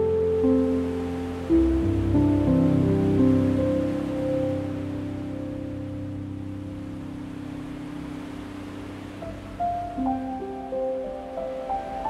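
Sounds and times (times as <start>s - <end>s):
gentle solo piano: 0.0s - 12.0s
ocean waves: 0.0s - 12.0s.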